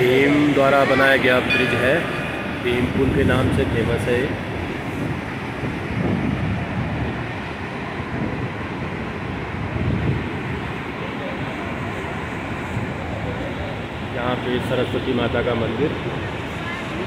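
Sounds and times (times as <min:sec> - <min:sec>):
river torrent rushing: 0:00.0 - 0:17.0.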